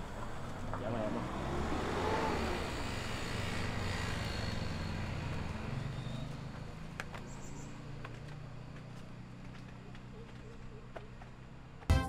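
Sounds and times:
motor vehicle passing: 0.0s - 11.9s.

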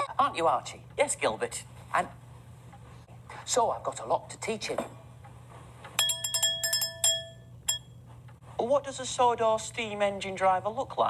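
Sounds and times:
hand bell ringing: 6.0s - 7.9s.

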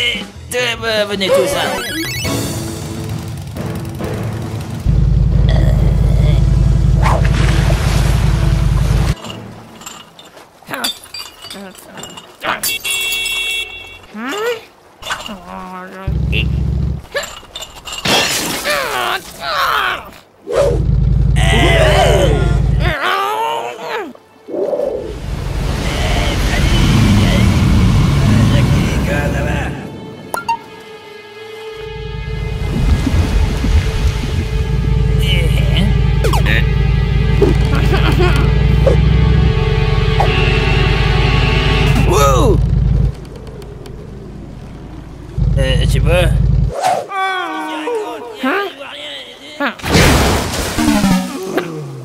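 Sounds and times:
calm sea and wind: 7.5s - 16.3s, 23.1s - 35.9s, 43.1s - 46.3s
shattering crash: 17.4s - 18.8s, 49.8s - 51.3s
cartoon voice crying out: 21.4s - 24.1s
faint clicks: 43.0s - 44.1s.

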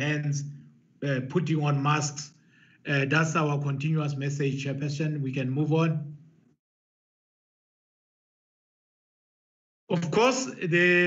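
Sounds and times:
man's voice: 0.0s - 0.4s, 1.0s - 2.3s, 2.9s - 6.0s, 9.9s - 11.0s.

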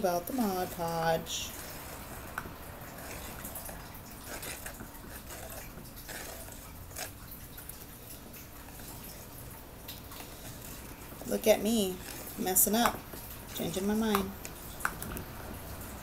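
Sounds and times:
wet sticky brushing: 0.0s - 16.0s.

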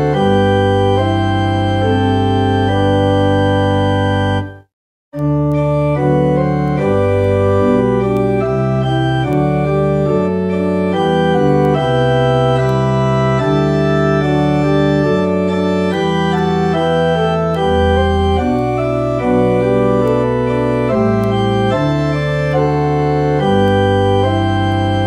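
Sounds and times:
church organ playing a hymn: 0.0s - 4.6s, 5.2s - 25.0s.

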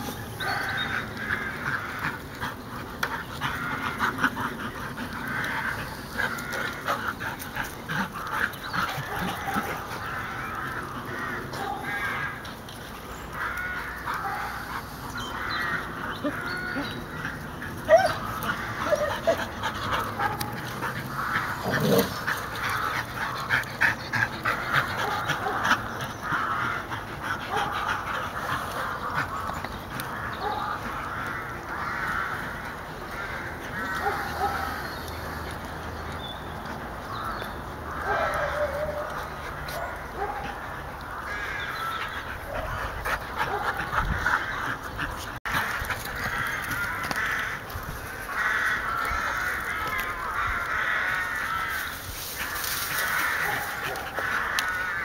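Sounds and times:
dogs playing: 0.0s - 55.0s.

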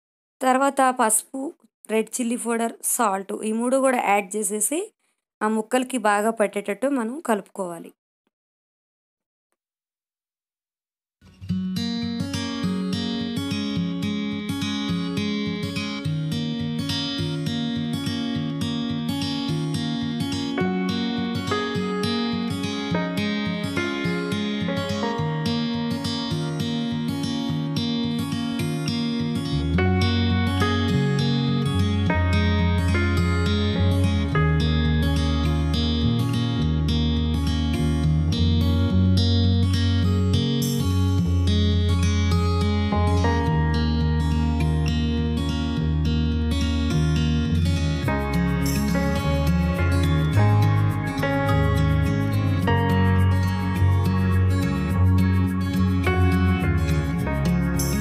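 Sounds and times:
acoustic guitar instrumental: 11.2s - 58.0s
bass line: 29.6s - 39.1s, 42.8s - 58.0s.

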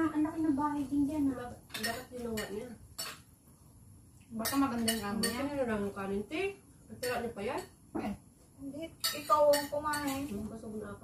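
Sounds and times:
cutlery clinking on plates: 1.7s - 3.3s, 4.4s - 5.5s, 7.0s - 7.7s, 9.0s - 10.4s.

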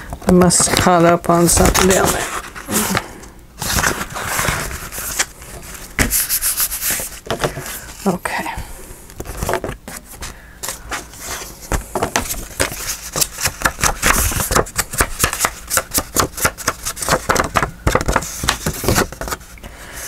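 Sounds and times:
paper rustling and crinkling: 0.0s - 8.2s, 9.2s - 19.6s.

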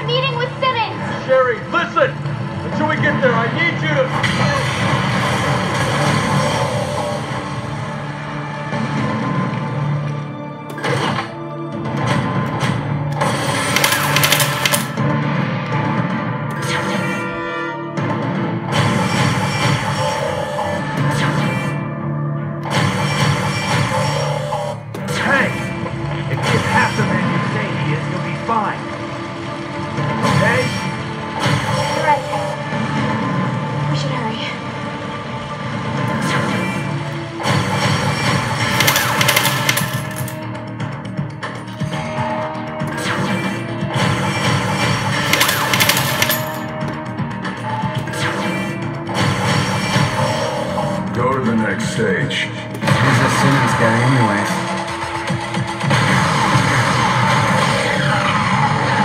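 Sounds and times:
game music: 0.0s - 58.1s.

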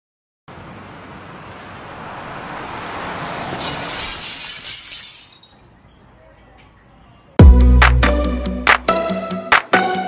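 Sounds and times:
glass shattering: 3.6s - 6.0s.

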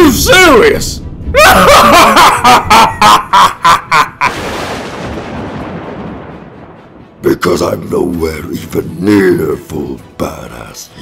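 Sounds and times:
man laughing: 1.4s - 4.4s
thunderclap sound effect: 4.1s - 8.2s.

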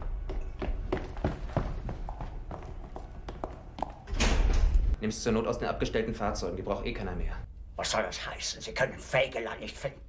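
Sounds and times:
footsteps on hard floor: 0.0s - 4.2s.

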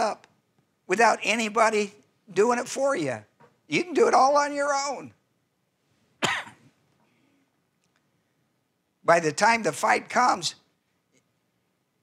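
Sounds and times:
man coughing: 6.2s - 6.7s.

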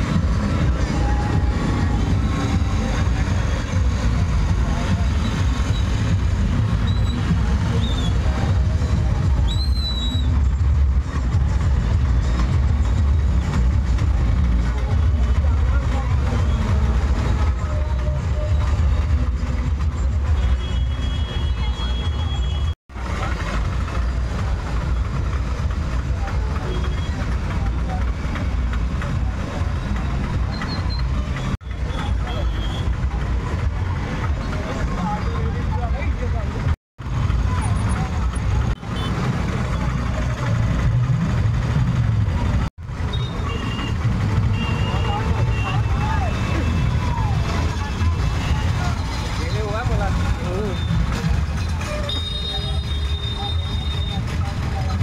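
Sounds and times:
auto-rickshaw engines passing: 0.0s - 55.0s
crowd voices: 0.0s - 55.0s.

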